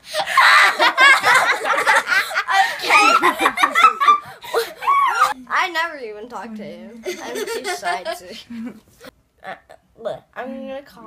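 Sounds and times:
girl laughing: 0:00.1 - 0:05.4, 0:07.0 - 0:08.8.

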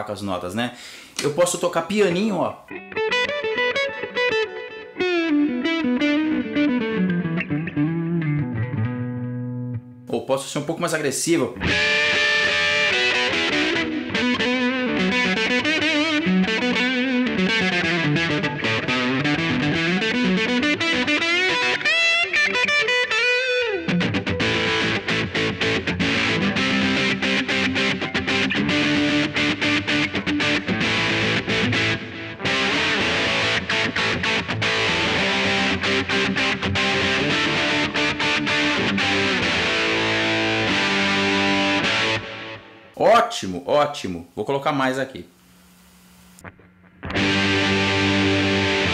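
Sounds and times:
distorted electric guitar: 0:02.6 - 0:10.1, 0:11.6 - 0:43.0, 0:45.2 - 0:48.9.

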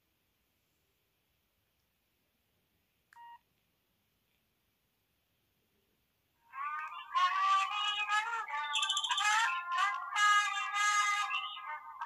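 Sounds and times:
phone keypad beep: 0:03.2 - 0:03.4.

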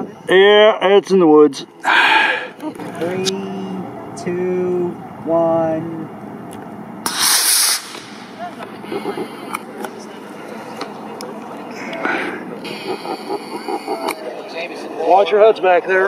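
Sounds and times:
rocket motor rushing hiss: 0:07.0 - 0:09.6.

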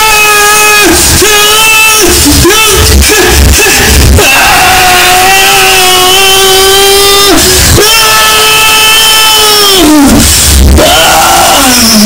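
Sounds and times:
man yelling distorted: 0:00.0 - 0:12.0.

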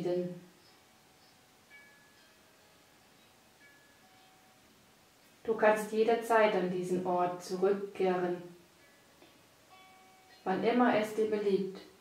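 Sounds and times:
soft chime-like music notes: 0:00.6 - 0:04.9, 0:09.7 - 0:10.5.

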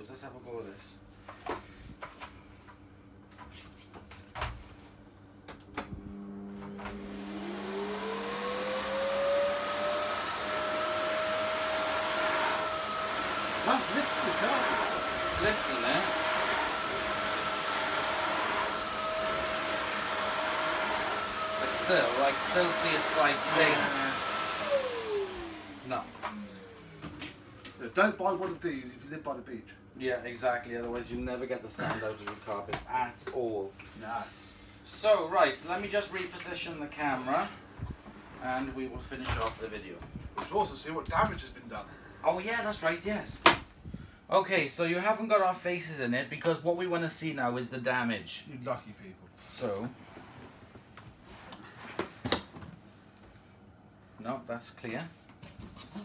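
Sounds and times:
vacuum cleaner motor whine: 0:05.8 - 0:28.4.

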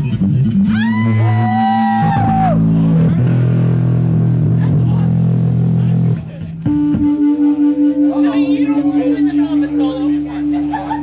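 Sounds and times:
electric bass solo: 0:00.0 - 0:11.0.

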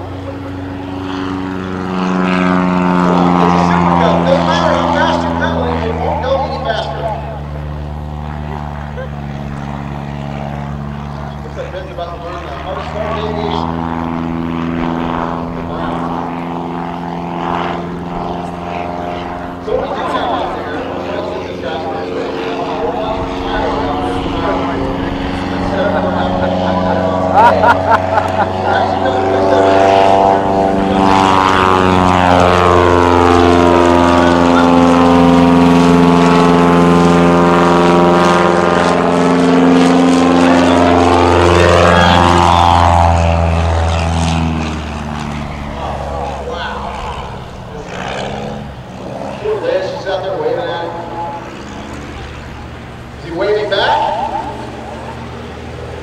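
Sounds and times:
propeller plane engine: 0:00.0 - 0:56.0.

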